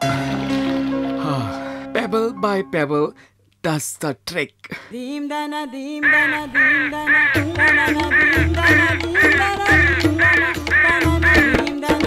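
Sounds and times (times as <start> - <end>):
bird-like squawking call: 6.0 - 11.6
cartoon music with bass beat: 6.2 - 12.0.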